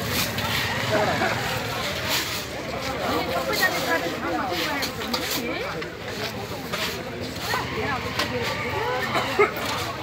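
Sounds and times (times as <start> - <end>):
hand shovels scraping rubble: 0.0 - 7.7
people calling out and talking: 0.0 - 10.0.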